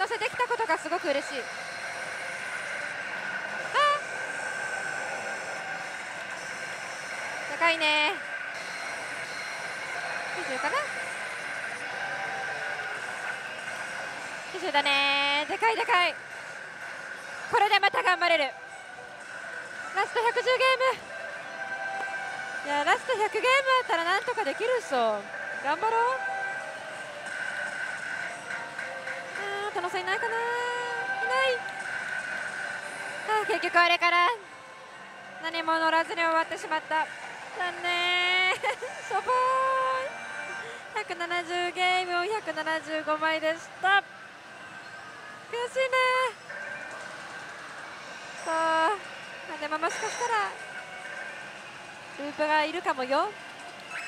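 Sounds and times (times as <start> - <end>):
steady high electronic tone: 0.0 - 18.6
slot machine sound effects: 0.0 - 34.4, 52.2 - 54.0.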